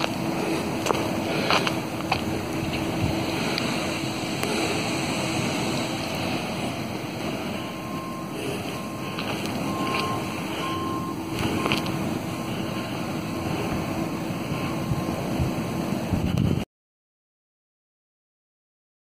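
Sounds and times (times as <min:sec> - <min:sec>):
low rumble and hiss: 0:00.0 - 0:16.6
faint high-pitched beeps: 0:06.4 - 0:15.3.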